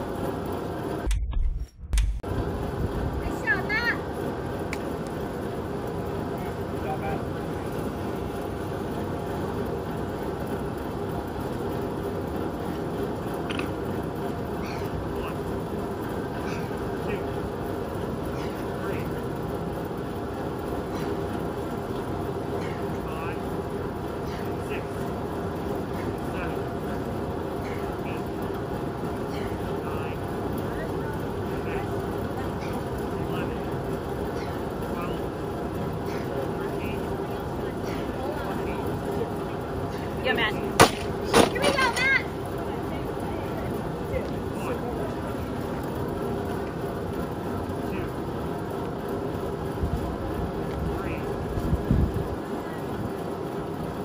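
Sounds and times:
fan whooshing hum: 0.0s - 54.0s.

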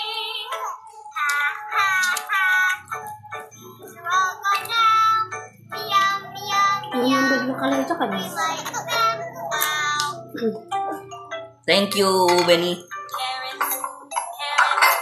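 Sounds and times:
children's song: 0.0s - 15.0s.

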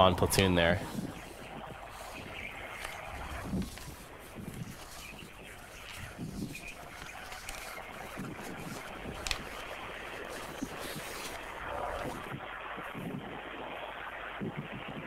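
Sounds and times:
wind: 0.0s - 15.0s.

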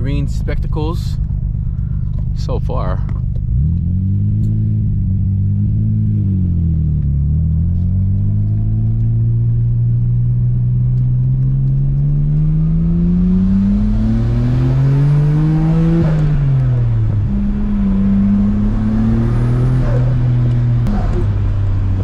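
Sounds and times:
car engine from inside cabin: 0.0s - 22.0s.

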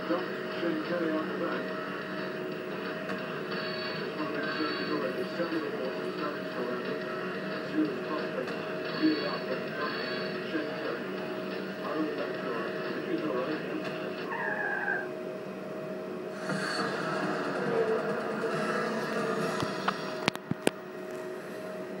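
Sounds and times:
electronic game sounds: 14.3s - 15.1s.

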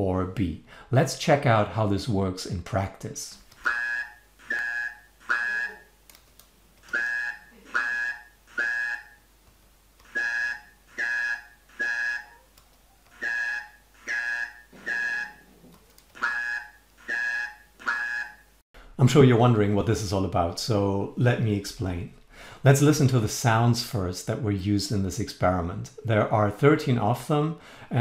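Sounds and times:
synthesized buzzy syllables: 3.6s - 5.9s, 6.8s - 9.3s.

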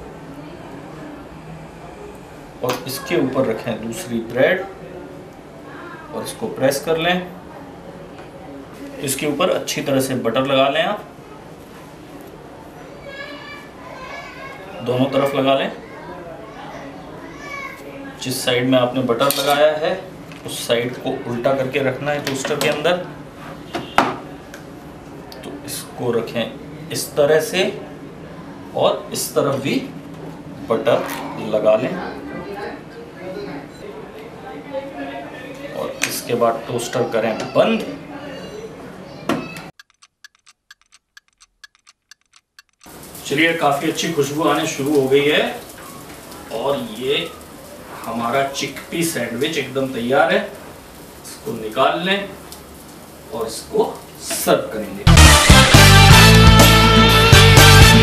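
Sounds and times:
child talking: 12.9s - 14.8s, 15.8s - 17.9s
clock ticking quickly: 39.8s - 42.9s.

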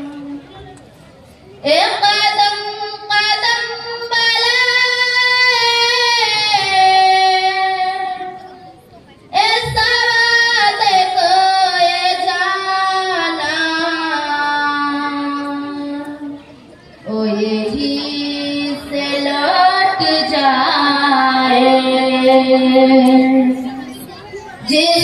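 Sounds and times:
young woman singing unaccompanied: 1.6s - 8.6s, 9.3s - 16.4s, 17.0s - 23.9s, 24.6s - 25.0s.

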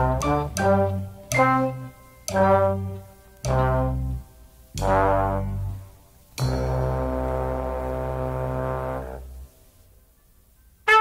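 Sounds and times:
brass section sustained low note: 0.0s - 9.6s.

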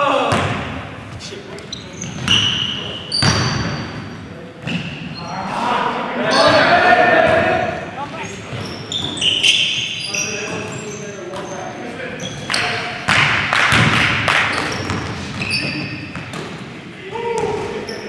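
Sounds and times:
players' voices: 0.0s - 18.0s
sneakers squeaking: 0.2s - 18.0s
basketball bouncing on hardwood: 13.1s - 14.2s.

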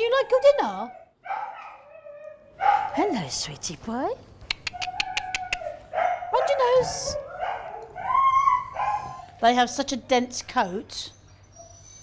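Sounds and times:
dog whining and howling: 0.0s - 2.6s, 4.7s - 9.3s, 11.1s - 12.0s.

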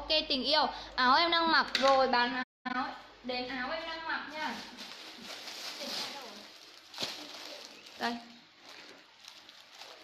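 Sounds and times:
plastic packaging crinkling: 4.3s - 10.0s.

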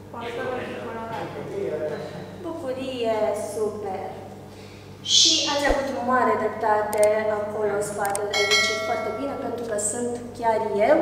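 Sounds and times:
woman speaking: 2.4s - 4.2s, 5.1s - 11.0s
mouse clicks: 6.9s - 7.1s, 8.0s - 8.3s
bright bell chime: 8.3s - 9.3s.

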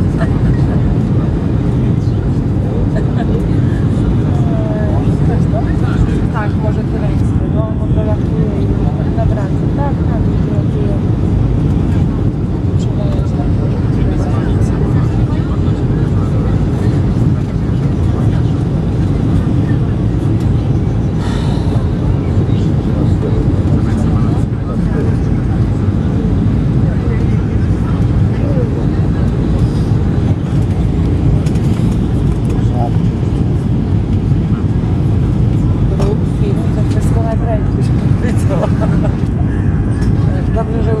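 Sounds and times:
airliner cabin rumble: 0.0s - 41.0s
faint passenger voices: 0.0s - 41.0s.

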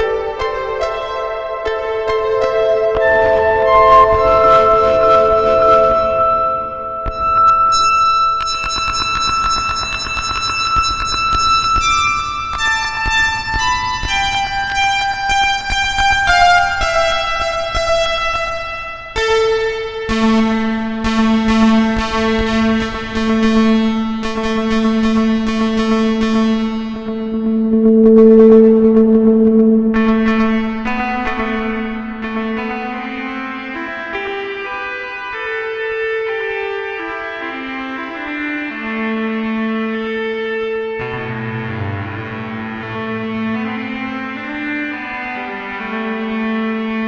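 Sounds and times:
synthesizer sustained notes: 0.7s - 11.1s, 25.0s - 33.6s.

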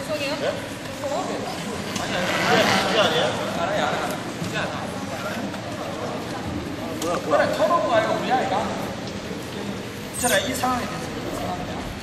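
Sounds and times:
sports hall background noise: 0.0s - 12.0s.

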